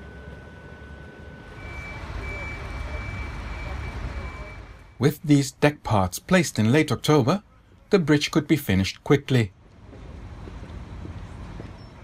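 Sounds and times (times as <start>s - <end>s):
crane engine rumbling: 0.0s - 5.6s, 9.5s - 12.0s.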